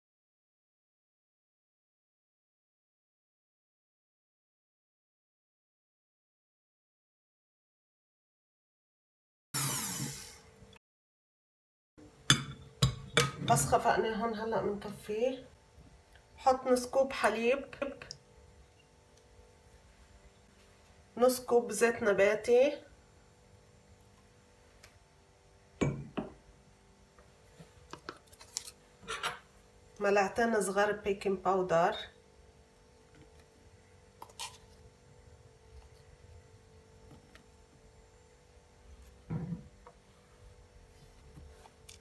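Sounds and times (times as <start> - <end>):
faint steady hum: 12.0 - 42.0.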